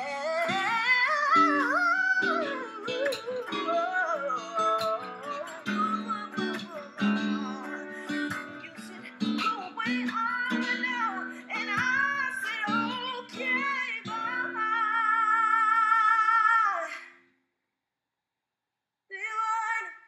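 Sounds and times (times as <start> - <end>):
acoustic guitar chords: 0.0 - 16.8
woman singing: 0.0 - 17.1, 19.1 - 20.0.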